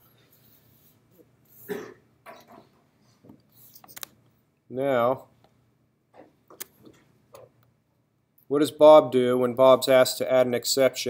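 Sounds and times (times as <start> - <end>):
person clearing throat: 1.6 - 2.8.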